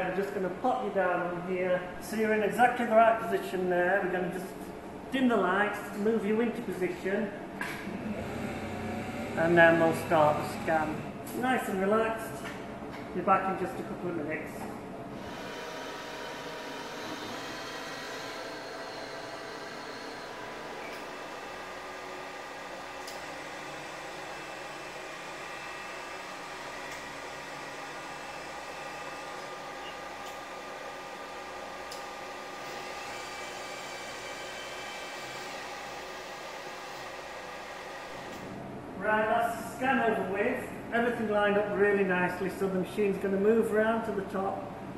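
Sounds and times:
machine whirring hum: 0.0s - 44.9s.

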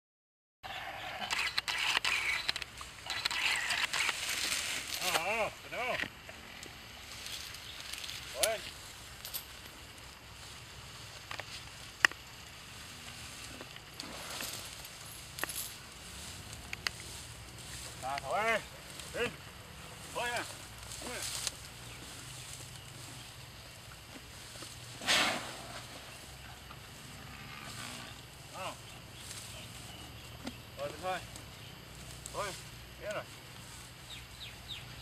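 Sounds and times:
dry grass crackling and rustling: 2.6s - 35.0s
man giving sharp calls: 18.0s - 21.4s.

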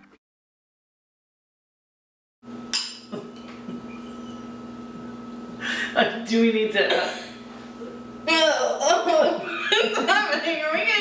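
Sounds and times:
low room hum: 2.5s - 11.0s
glassware clinking: 2.7s - 4.5s.

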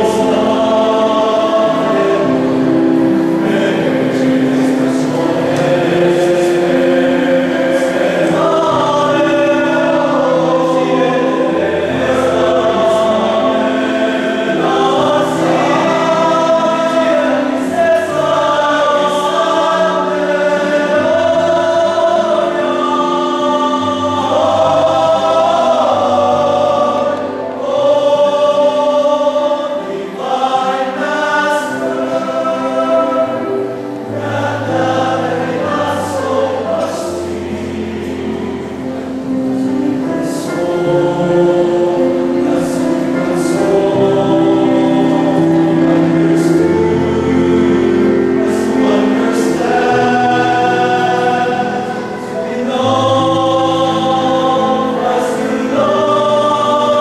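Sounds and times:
male choir singing: 0.0s - 57.0s.

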